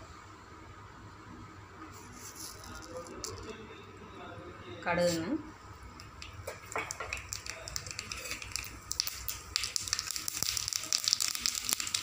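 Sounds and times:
seeds sizzling in hot oil: 6.2s - 12.0s.

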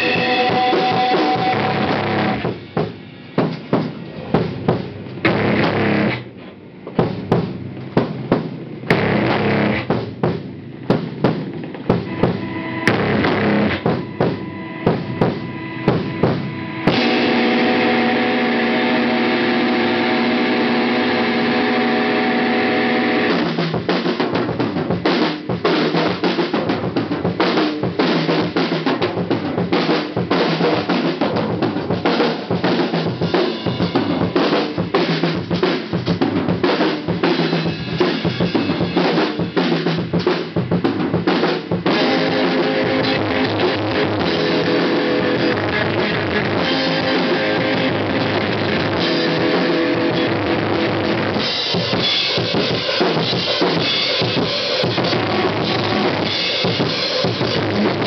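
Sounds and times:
fast dense drumming: 0.0s - 58.0s
hardcore band playing: 0.0s - 58.0s
ringing chord with cymbal wash: 12.1s - 23.4s.

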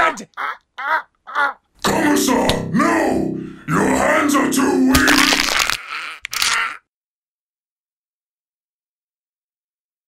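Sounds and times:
bone crunching: 4.9s - 6.6s.

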